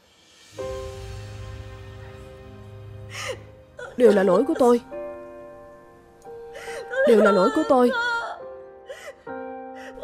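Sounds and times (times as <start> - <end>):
soft background music: 0.0 - 10.0
woman sobbing gasp: 3.1 - 4.0, 6.5 - 10.0.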